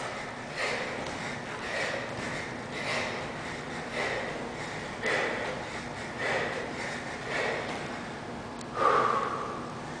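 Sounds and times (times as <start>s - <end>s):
man breathing hard: 0.0s - 10.0s.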